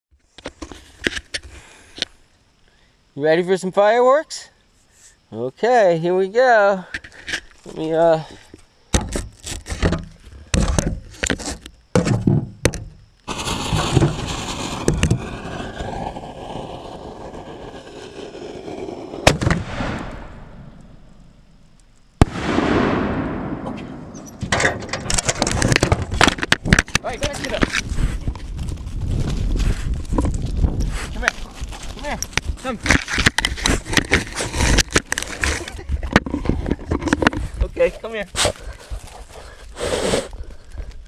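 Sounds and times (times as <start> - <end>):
camera rumbling and jostling: 23.6 - 41.0.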